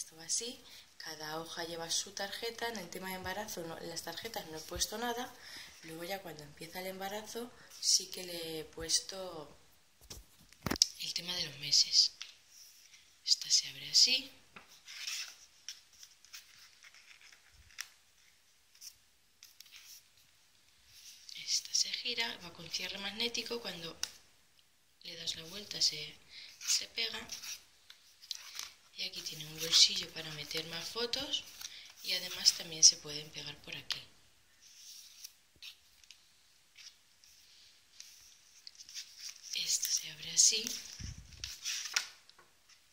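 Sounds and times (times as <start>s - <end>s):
paper pages rustling and turning: 10.0s - 10.8s, 14.5s - 21.8s, 25.4s - 33.0s, 33.8s - 42.9s.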